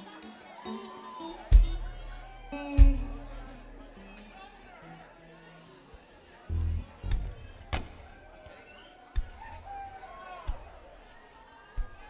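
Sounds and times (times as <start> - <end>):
faint voices: 0.0 - 12.0
low thumps on stage: 1.5 - 2.0.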